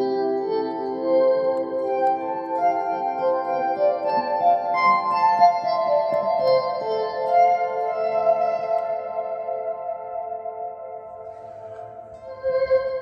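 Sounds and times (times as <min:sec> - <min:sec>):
reverberant electric guitar notes: 0:00.0 - 0:13.0.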